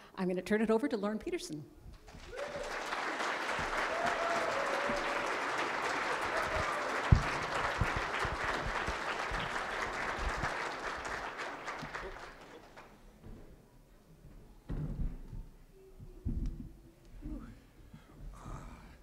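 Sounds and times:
audience applauding: 2.0s - 13.0s.

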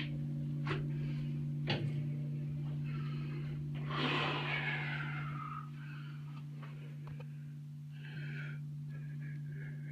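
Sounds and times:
steady low hum: 0.0s - 9.9s
person breathing out heavily: 2.8s - 9.9s.

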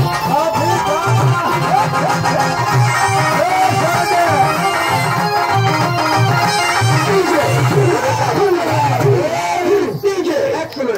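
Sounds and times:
men singing and calling together: 0.0s - 10.9s.

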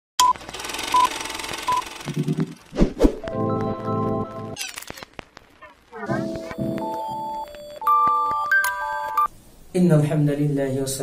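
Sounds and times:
steady hiss: 9.3s - 11.0s.

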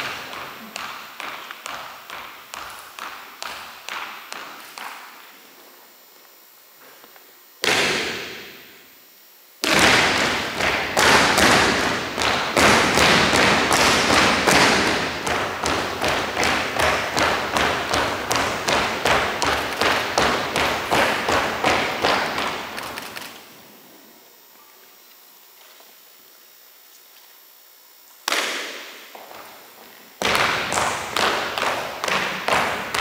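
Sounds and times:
sharp marching drum beats: 9.7s - 23.0s.

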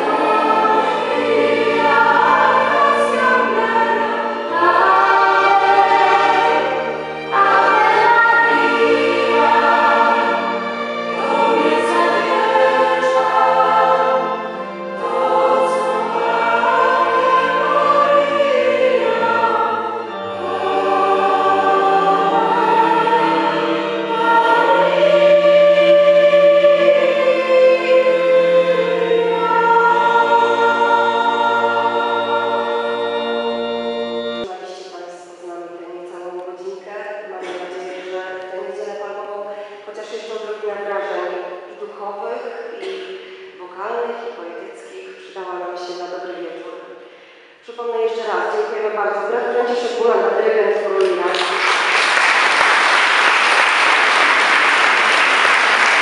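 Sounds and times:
mixed choir singing: 0.0s - 34.5s, 51.3s - 56.0s.

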